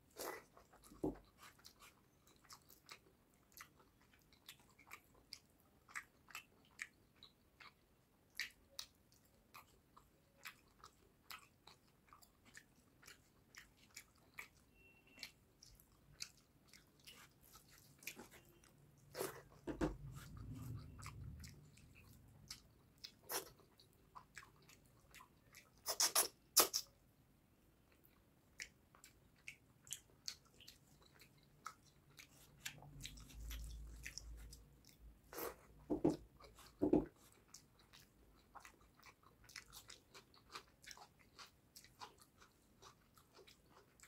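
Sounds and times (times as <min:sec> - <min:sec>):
wet chewing mouth clicks: 0:00.1 - 0:27.0, 0:27.9 - 0:44.0.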